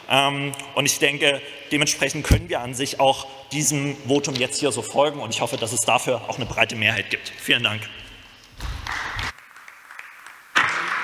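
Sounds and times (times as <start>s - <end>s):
people applauding: 8.8s - 11.0s.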